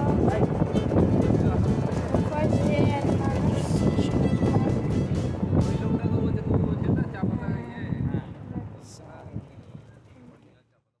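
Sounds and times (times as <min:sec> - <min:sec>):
people talking: 0:00.0 - 0:10.8.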